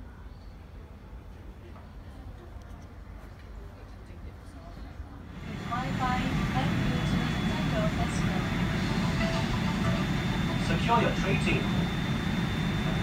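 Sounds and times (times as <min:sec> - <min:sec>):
airliner cabin roar with whine: 0:05.1 - 0:13.0
recorded safety announcement: 0:05.4 - 0:13.0.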